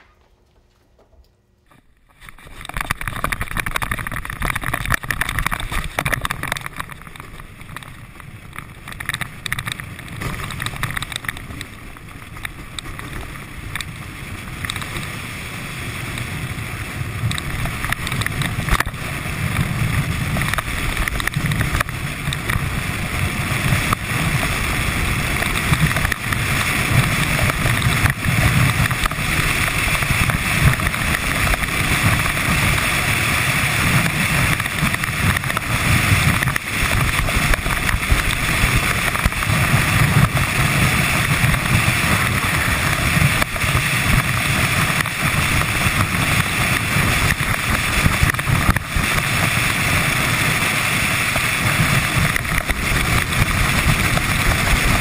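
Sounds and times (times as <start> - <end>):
sled runners rumbling on ice: 0.0 - 55.0.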